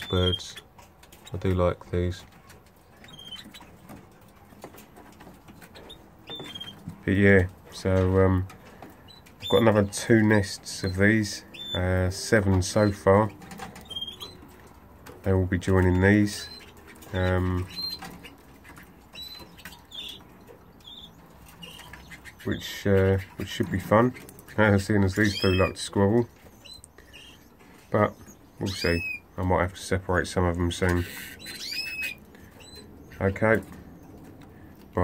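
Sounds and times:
birds ticking and scratching in cage: 0:00.0 - 0:35.0
canaries chirping: 0:00.0 - 0:35.0.

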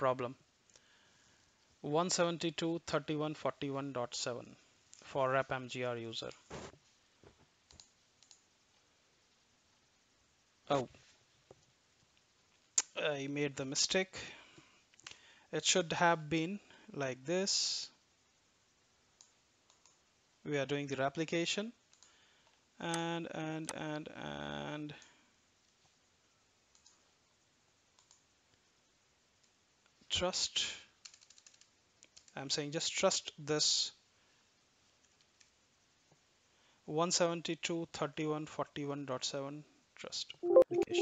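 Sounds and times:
computer mouse clicks: 0:07.6 - 0:08.5, 0:19.2 - 0:20.0, 0:21.9 - 0:22.1, 0:26.7 - 0:27.0, 0:28.0 - 0:28.3, 0:31.0 - 0:32.4.

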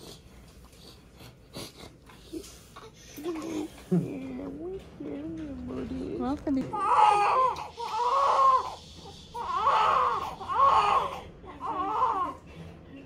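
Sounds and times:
baby crying: 0:06.7 - 0:12.4.

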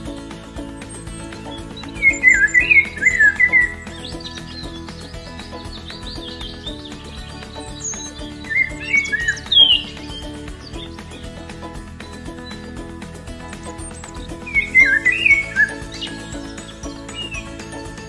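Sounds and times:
background music: 0:00.0 - 0:18.0
quick bird chirps: 0:00.8 - 0:11.6, 0:13.5 - 0:17.6.

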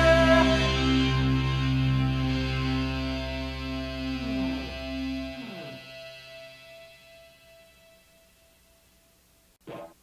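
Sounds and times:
bass guitar: 0:00.0 - 0:07.2
electric guitar chord ringing: 0:00.0 - 0:08.4.

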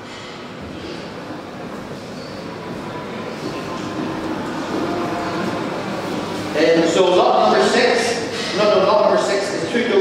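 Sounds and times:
room noise in large hall: 0:00.0 - 0:10.0
murmur of people talking: 0:00.9 - 0:10.0.

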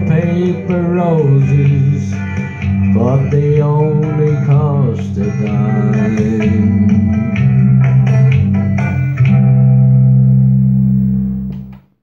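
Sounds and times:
guitar chord ringing: 0:00.0 - 0:12.0.

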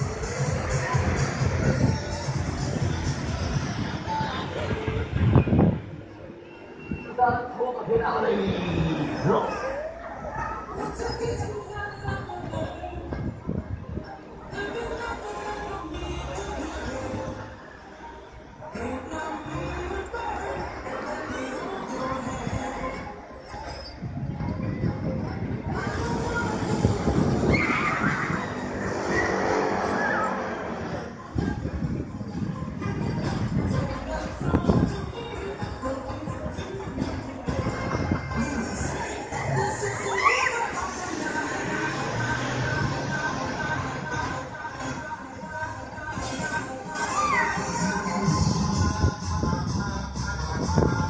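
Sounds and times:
thrill ride rushing rumble: 0:24.0 - 0:35.1.

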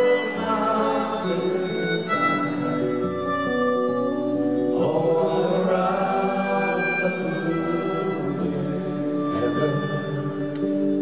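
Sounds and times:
acoustic guitars: 0:00.0 - 0:11.0
harmonica melody: 0:00.0 - 0:11.0.

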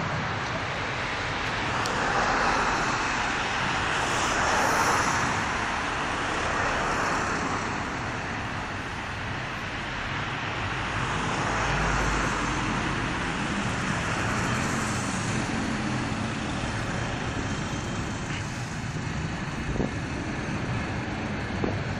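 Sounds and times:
rush of tyres and engines: 0:00.0 - 0:21.9.

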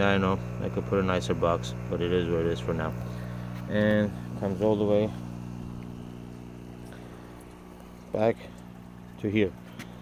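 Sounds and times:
air pump humming: 0:00.0 - 0:10.0.

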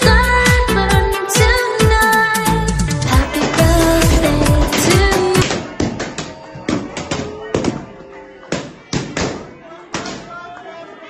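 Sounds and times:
faint voices: 0:03.1 - 0:11.0.

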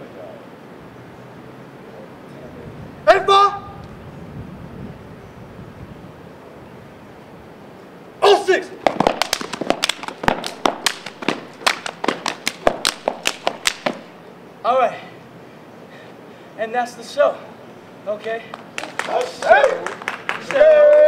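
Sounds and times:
person shouting: 0:03.1 - 0:03.8, 0:08.2 - 0:08.7
hand claps and body slaps: 0:08.8 - 0:14.1, 0:18.5 - 0:21.0.

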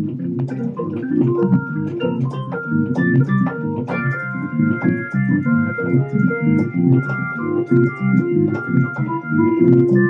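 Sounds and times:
organ keyboard improvisation: 0:00.0 - 0:10.0.

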